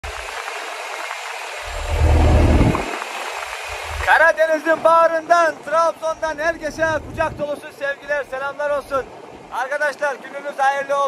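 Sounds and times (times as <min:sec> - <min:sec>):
wind buffeting microphone: 0:01.6 - 0:05.0, 0:05.8 - 0:09.5.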